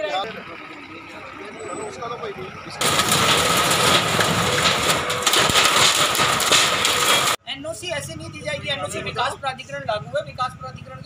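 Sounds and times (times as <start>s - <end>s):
backhoe engine running hard: 0.0s - 5.4s
debris knocking: 2.8s - 7.4s.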